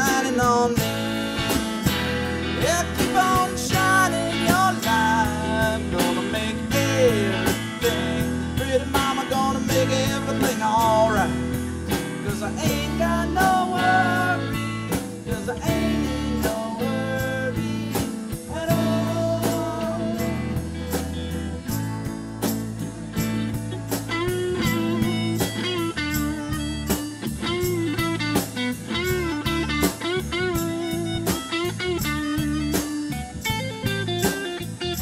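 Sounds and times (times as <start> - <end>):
live rock band playing: 0.0 - 35.0.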